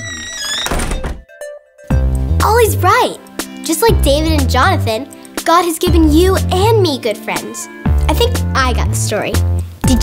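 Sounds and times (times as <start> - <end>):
wooden shutters thunking shut: 0.0 - 1.3.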